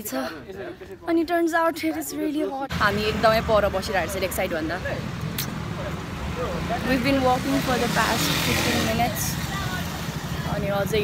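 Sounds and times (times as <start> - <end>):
street traffic rumble: 2.7 - 11.0.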